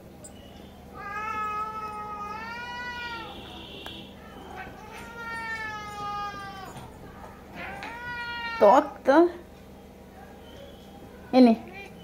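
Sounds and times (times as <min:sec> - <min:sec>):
cat meowing: 0:00.9 - 0:03.6, 0:04.3 - 0:08.8.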